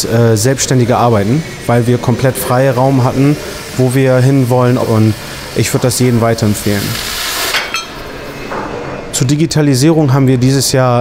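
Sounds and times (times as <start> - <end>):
cutting torch hissing: 0.0 - 8.5
metallic clink: 7.6 - 8.0.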